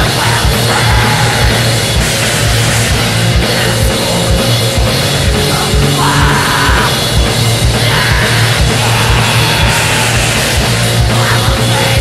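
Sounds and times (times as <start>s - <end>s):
black metal song: 0.0s - 12.0s.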